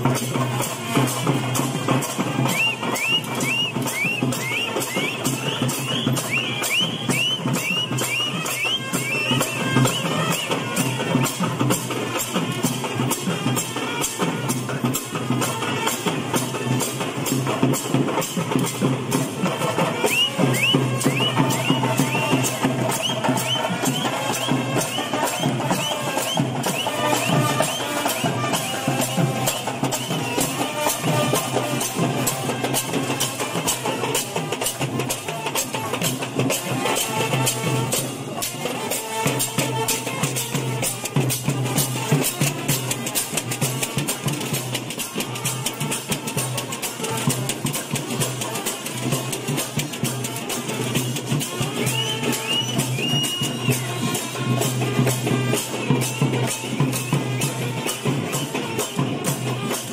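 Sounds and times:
drum band fast rhythm: 0.0 - 59.9.

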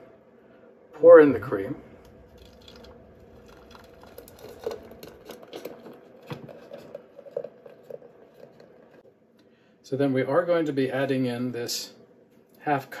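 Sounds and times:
cream mixture plopping: 2.0 - 9.1.

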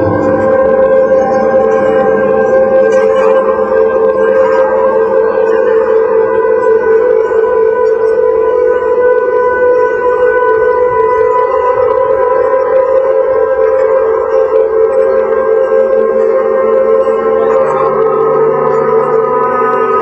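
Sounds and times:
electronic drone music: 0.0 - 20.0.

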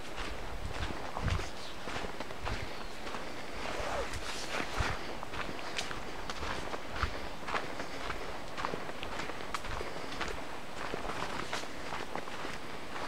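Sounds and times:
footsteps crunching on leaf litter: 0.0 - 13.0
plants rustling underfoot: 3.6 - 5.1.

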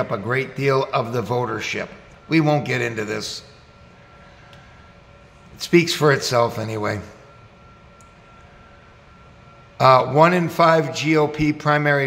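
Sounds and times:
faint high whine: 0.0 - 12.0
low hum and hiss: 0.0 - 12.0.

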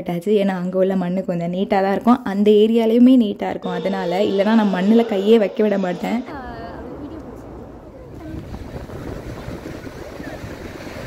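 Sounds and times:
wind buffeting microphone: 5.1 - 11.0
breaking surf: 6.2 - 11.0.

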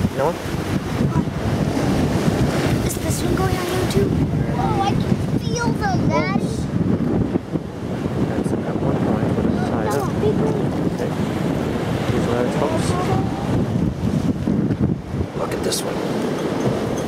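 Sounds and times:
sea water washing against wharf: 0.0 - 17.0
wind buffeting microphone: 0.0 - 17.0.

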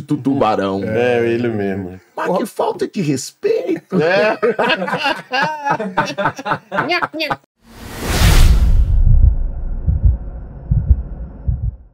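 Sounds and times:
low rumble: 7.7 - 11.9
deep bass thumps: 8.5 - 11.9.

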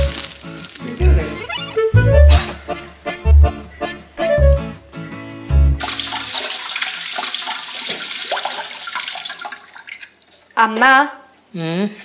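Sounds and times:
tap water running into sink: 5.8 - 10.5.

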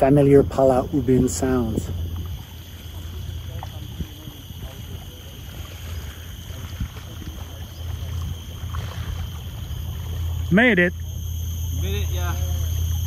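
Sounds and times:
wind buffeting microphone: 0.0 - 10.5
insects droning: 0.0 - 13.0
paddles splashing in water: 0.0 - 13.0.

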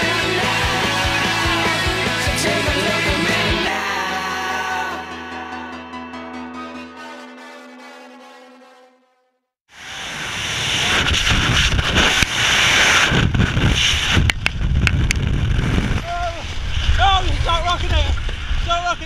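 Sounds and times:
music: 0.0 - 9.2
loud wind rushing over microphone: 9.7 - 19.0.

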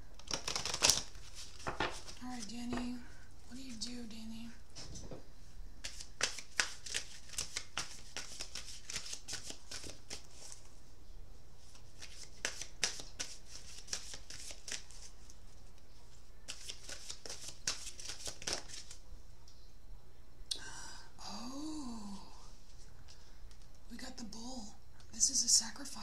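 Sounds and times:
cards being shuffled: 0.2 - 3.0, 5.8 - 10.7, 11.6 - 15.8, 16.5 - 19.0.

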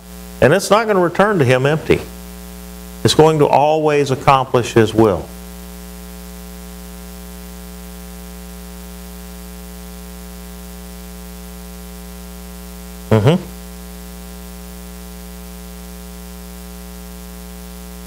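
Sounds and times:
electrical mains hum: 0.0 - 18.0
brief spoken sound: 13.1 - 13.5.

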